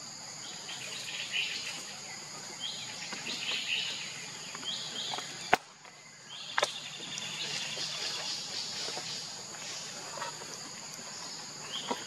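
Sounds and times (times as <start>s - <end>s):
birds chirping: 0.0s - 12.0s
high insect drone: 0.0s - 12.0s.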